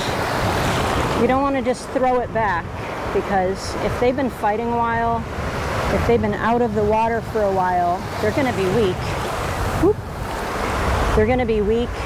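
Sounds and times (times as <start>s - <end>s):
surf washing around legs: 0.0s - 12.0s.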